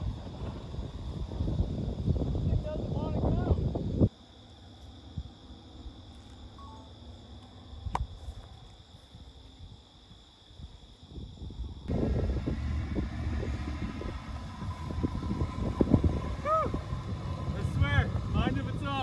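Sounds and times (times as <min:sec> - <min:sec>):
wind on microphone: 0:00.0 - 0:04.1, 0:10.5 - 0:19.0
car driving over dirt track: 0:11.9 - 0:19.0
car engine running: 0:11.9 - 0:19.0.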